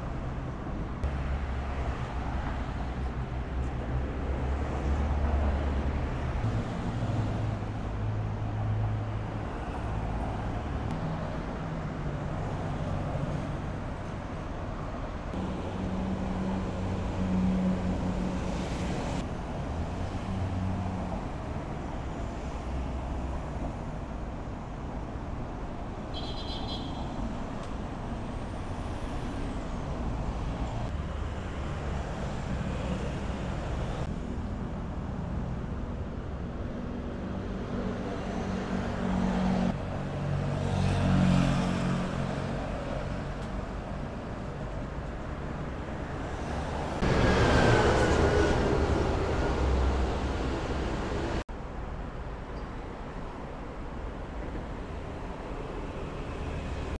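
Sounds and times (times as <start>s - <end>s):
road traffic rumble: 0.0s - 56.9s.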